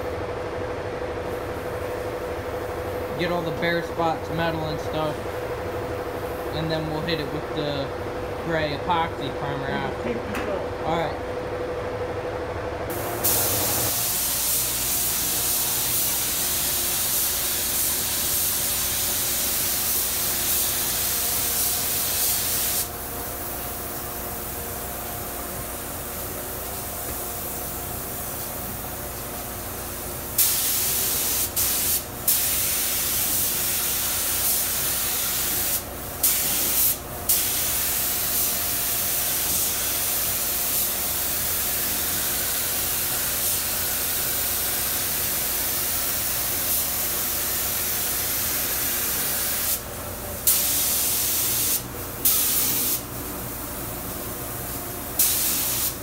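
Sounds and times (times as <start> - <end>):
spray gun hissing: 12.9 - 24.6, 29.4 - 53.2, 54.0 - 56.0.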